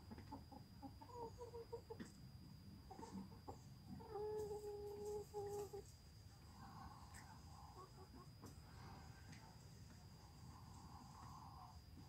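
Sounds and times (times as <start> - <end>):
hens clucking: 0.0 - 2.2, 2.8 - 8.6.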